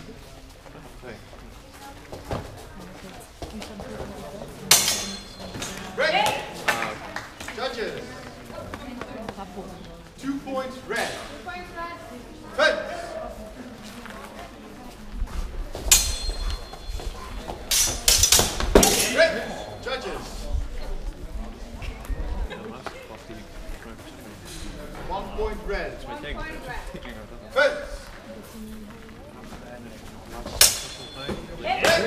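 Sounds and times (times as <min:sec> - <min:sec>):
swords clashing with metallic ring: 0:04.7 - 0:06.0, 0:15.9 - 0:17.1, 0:17.7 - 0:19.8, 0:30.5 - 0:32.0.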